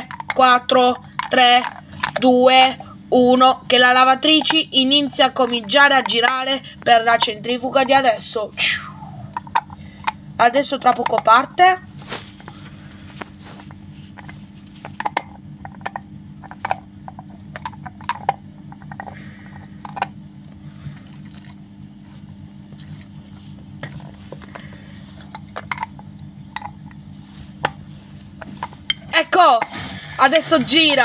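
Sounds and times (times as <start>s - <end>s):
washing machine humming: 0.0s - 31.0s.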